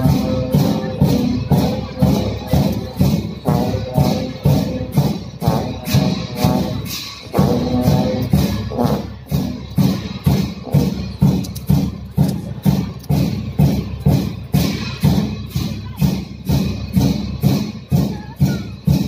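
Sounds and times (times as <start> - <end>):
drum and cymbal strikes: 0.0 - 19.0.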